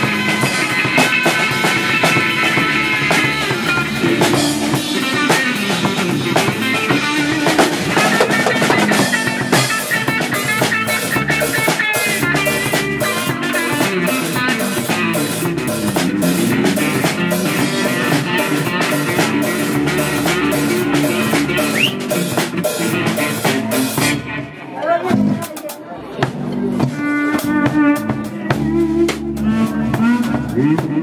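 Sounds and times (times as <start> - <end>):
electric guitar lines: 0.0 - 25.4
drum kit beat: 0.0 - 31.0.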